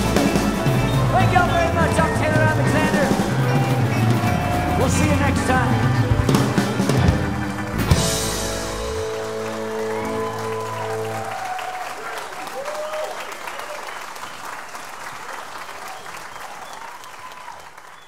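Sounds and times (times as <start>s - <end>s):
band chord ringing: 0.0s - 11.3s
audience applauding: 0.0s - 18.0s
audience whooping: 0.0s - 18.0s.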